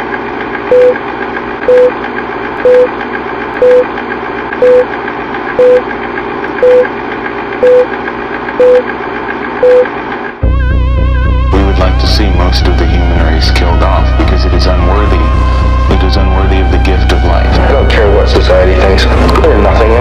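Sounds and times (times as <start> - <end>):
short beeps: 1.7 - 1.9, 2.6 - 2.9, 3.6 - 3.9, 4.6 - 4.9, 5.6 - 5.8, 6.6 - 6.9, 7.6 - 7.9, 8.6 - 8.8, 9.6 - 9.9
loud low drone: 10.4 - 20.0
steady whirring noise: 11.8 - 20.0.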